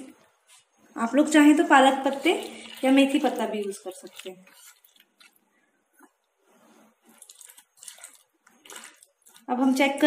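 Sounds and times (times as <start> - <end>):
hand mixing wet batter: 0.0 - 10.0.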